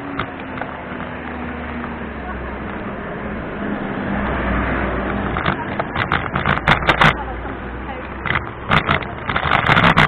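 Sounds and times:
bicycle rattles and knocks: 0.0s - 2.0s, 4.2s - 10.0s.

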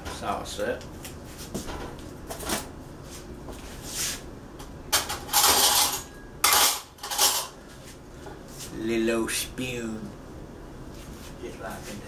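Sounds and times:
spoon and dishes clattering: 5.0s - 7.5s.

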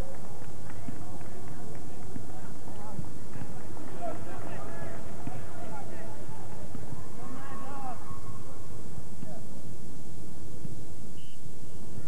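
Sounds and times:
crowd of voices calling out: 3.9s - 8.7s.

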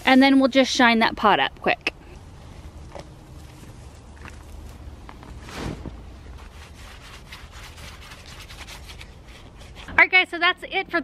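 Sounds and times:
louder rustle: 4.6s - 9.0s
cloth rubbing on wicker: 5.3s - 9.9s.

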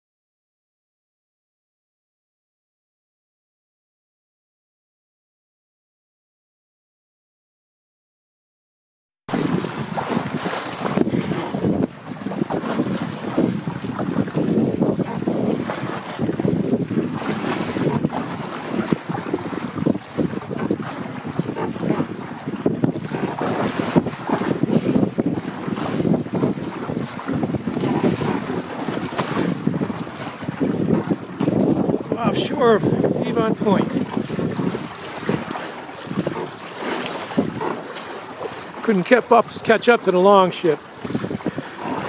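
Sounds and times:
water splashing along hull: 9.3s - 42.0s
wind buffeting microphone: 9.3s - 42.0s.

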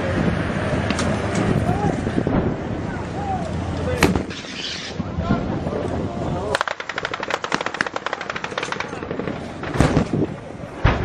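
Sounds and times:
machine gun firing: 6.6s - 10.0s.

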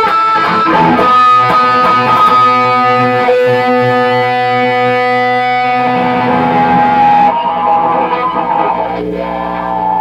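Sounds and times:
electric guitar sustained notes: 0.0s - 10.0s.

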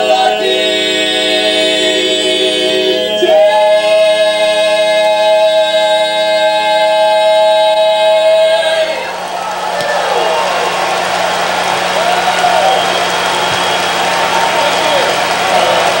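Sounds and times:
male a cappella quartet chord: 0.0s - 9.2s
audience applauding and cheering: 8.1s - 16.0s.

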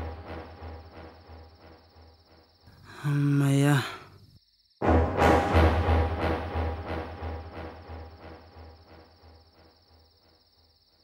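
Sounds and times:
low rhythmic throb: 0.0s - 2.5s, 4.8s - 9.7s
crickets trilling: 0.0s - 4.8s, 7.5s - 11.0s.

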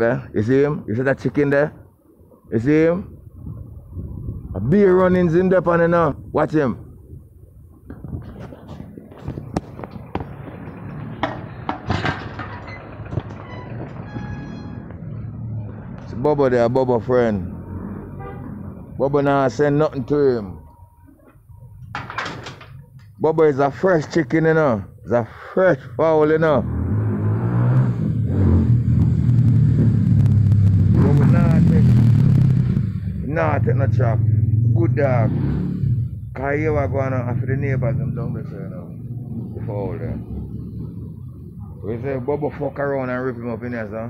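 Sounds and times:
engine droning: 8.5s - 22.0s, 22.8s - 44.0s
sharp knocks and clicks: 9.1s - 15.0s, 21.2s - 23.2s.

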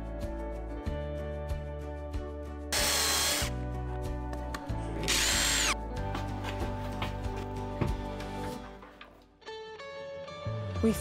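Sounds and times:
background music: 0.0s - 11.0s
router cutting with high whine: 5.1s - 5.8s.

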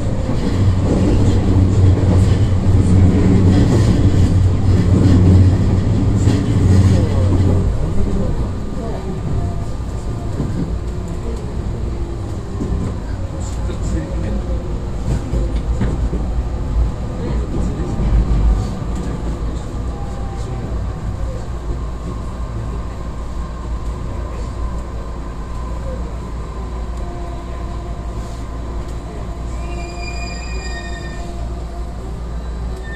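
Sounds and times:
train wheels and running gear: 0.0s - 26.0s.

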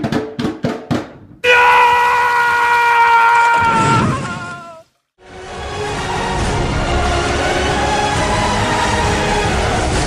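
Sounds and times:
drum strikes: 0.0s - 1.4s.

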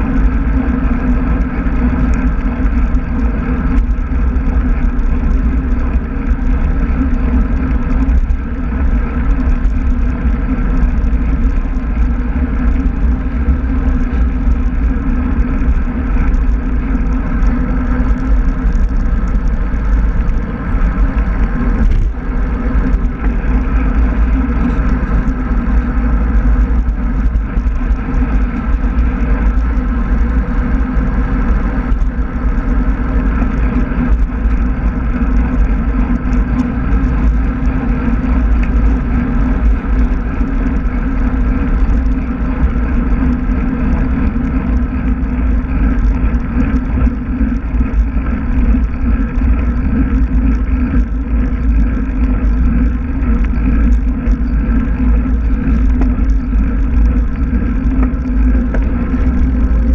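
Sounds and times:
tyre noise on road: 0.0s - 59.9s
wind buffeting microphone: 0.0s - 59.9s.

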